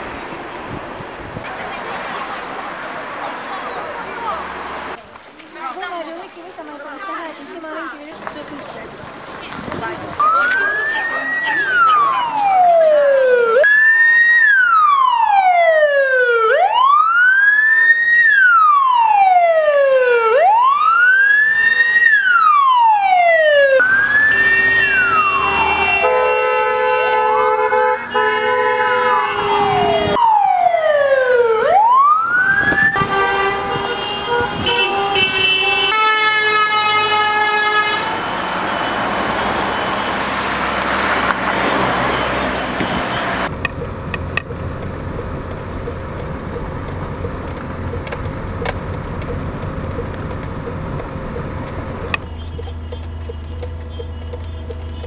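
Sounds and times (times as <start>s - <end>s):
vehicles driving past: 0.0s - 55.0s
police siren wailing: 10.2s - 27.2s, 28.9s - 34.0s
long vehicle horns: 21.4s - 22.4s, 23.4s - 30.2s, 32.6s - 43.5s, 52.2s - 55.0s.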